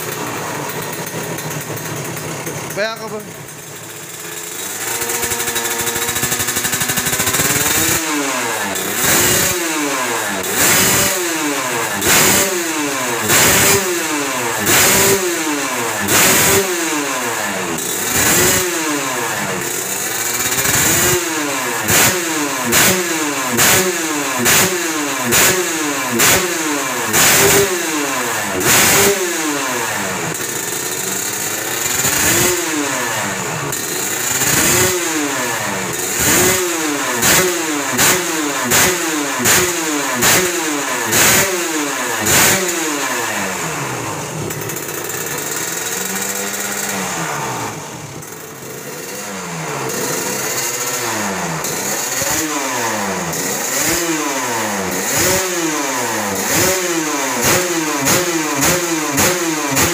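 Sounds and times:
motorcycle engine revving: 0.0 - 59.9.

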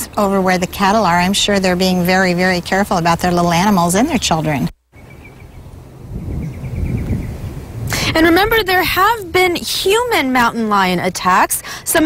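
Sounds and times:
wind rumbling on microphone: 0.0 - 11.3.

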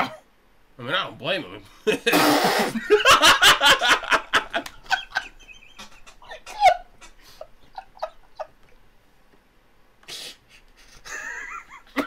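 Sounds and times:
men laughing hard: 1.9 - 8.8, 10.8 - 12.0.

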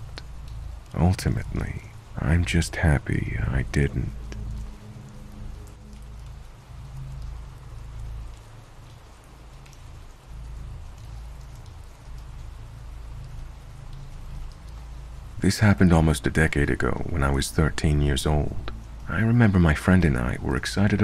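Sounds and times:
rain pattering: 0.0 - 21.0
dark background music drone: 3.6 - 15.2.

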